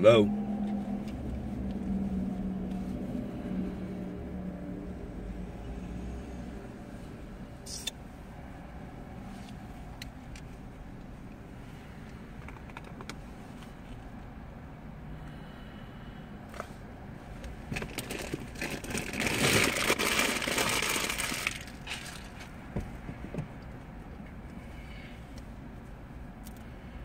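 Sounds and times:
low hum in car cabin: 0.0s - 27.0s.

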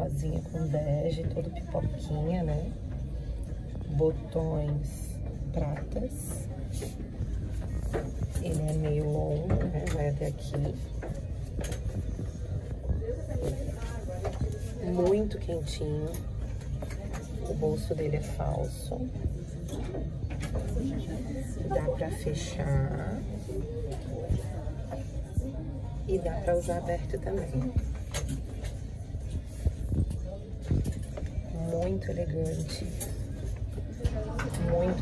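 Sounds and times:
faint indistinct voices: 0.0s - 35.0s
low steady hum: 0.0s - 35.0s.

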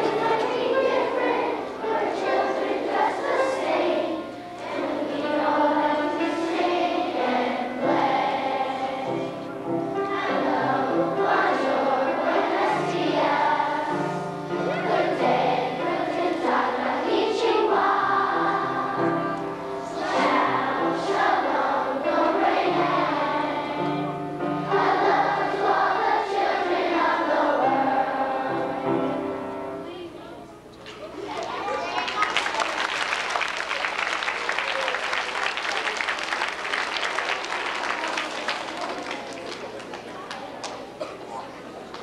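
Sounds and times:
children singing in unison: 0.0s - 29.4s
steady accompanying notes: 0.0s - 30.6s.

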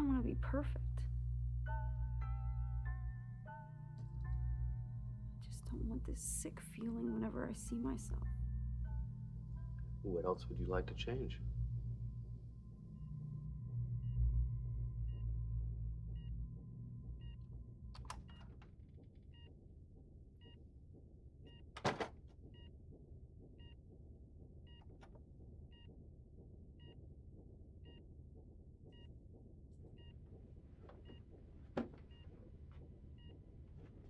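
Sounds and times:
medical monitor beeping: 0.0s - 19.5s, 29.8s - 34.0s
steady tone with low rumble: 0.0s - 21.6s.

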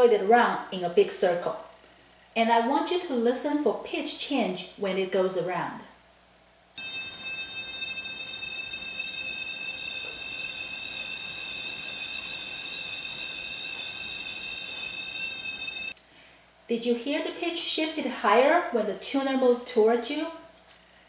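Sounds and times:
high-pitched tuner tone: 6.8s - 15.9s.

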